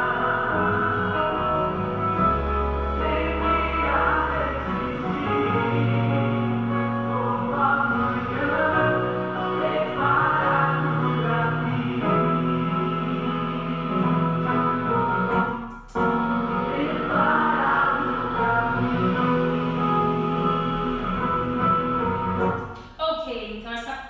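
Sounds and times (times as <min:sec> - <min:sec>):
choir singing gospel song: 0:00.0 - 0:15.4, 0:16.2 - 0:22.4.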